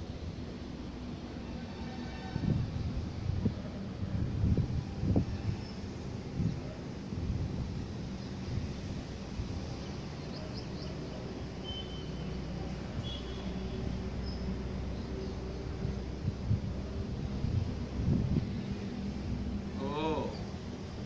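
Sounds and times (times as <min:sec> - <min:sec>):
low gusts: 0:00.0 - 0:21.0.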